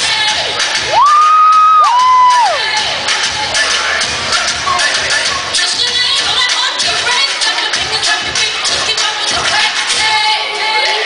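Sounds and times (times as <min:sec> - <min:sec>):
dance music: 0:00.0 - 0:11.0
children cheering: 0:00.9 - 0:02.7.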